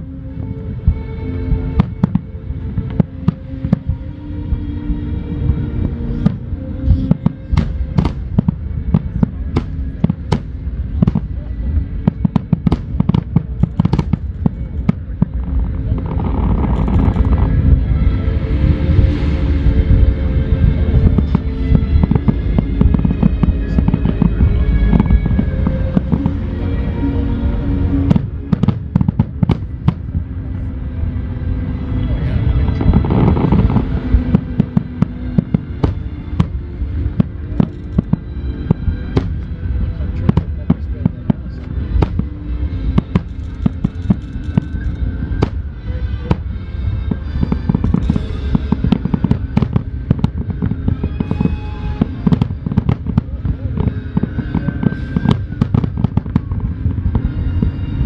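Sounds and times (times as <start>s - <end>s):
deep rolling rumble: 0.0s - 58.0s.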